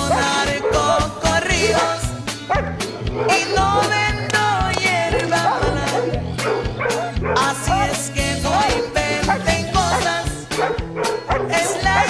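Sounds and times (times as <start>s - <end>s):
upbeat background music: 0.0s - 12.0s.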